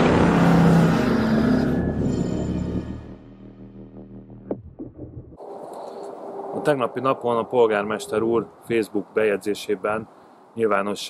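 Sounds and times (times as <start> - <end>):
cinematic intro music: 0.0 - 5.5
deep boom: 2.8 - 5.4.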